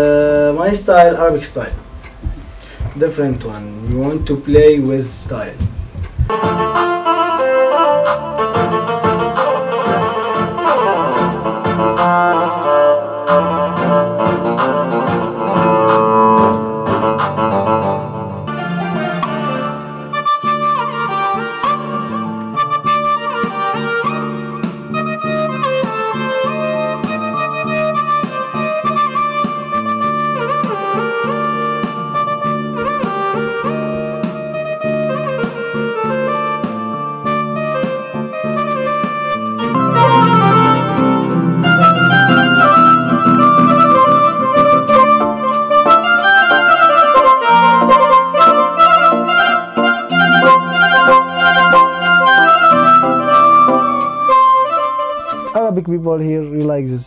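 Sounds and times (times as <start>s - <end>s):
electronic keyboard melody: 0.0s - 56.7s.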